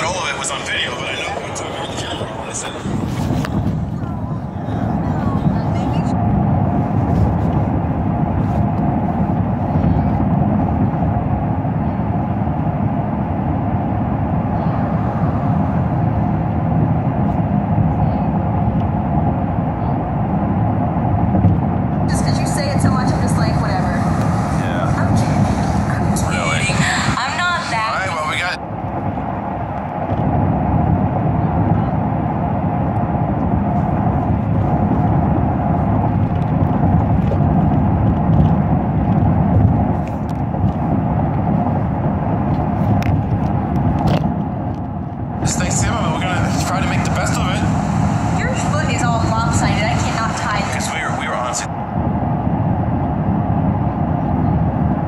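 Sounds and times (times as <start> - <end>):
car road and engine noise: 0.0 - 55.0.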